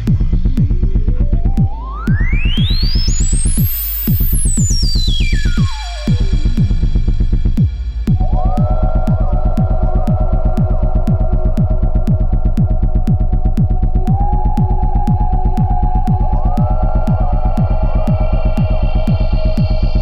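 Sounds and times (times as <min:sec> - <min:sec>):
hi-hat ticks: 0:00.0 - 0:20.0
kick drum thumps: 0:00.0 - 0:20.0
throbbing bass: 0:00.0 - 0:20.0
held synth tones: 0:08.1 - 0:20.0.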